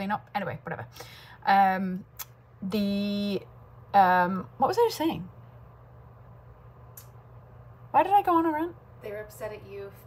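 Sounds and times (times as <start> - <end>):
woman's voice: 0.0 - 5.4, 7.9 - 10.0
low steady hum: 0.0 - 10.0.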